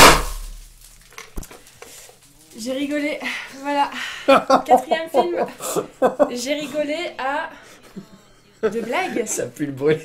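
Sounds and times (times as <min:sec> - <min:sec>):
confetti popper bang: 0:00.0 - 0:00.9.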